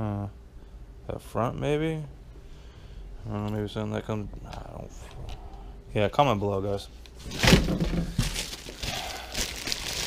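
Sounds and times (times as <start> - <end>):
plastic bags crinkling: 7.2 - 10.0.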